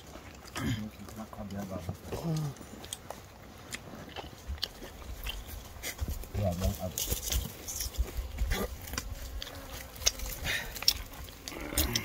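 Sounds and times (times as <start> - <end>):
footsteps through brush: 1.3 - 12.0.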